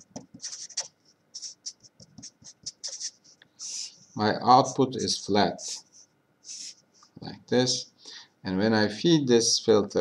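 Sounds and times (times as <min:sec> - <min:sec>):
felt-tip marker scratching on paper: 0:00.0 - 0:04.0, 0:05.6 - 0:06.8.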